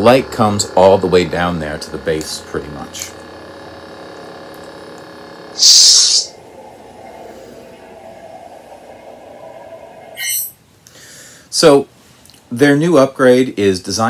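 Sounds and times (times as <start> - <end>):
electronic lightsaber hum: 0.0 - 10.8
loud hissing burst: 5.5 - 9.8.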